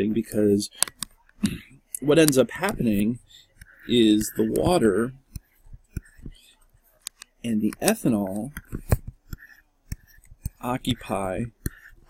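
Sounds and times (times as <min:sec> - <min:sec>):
stylus tapping and scratching: 0:00.1 - 0:12.0.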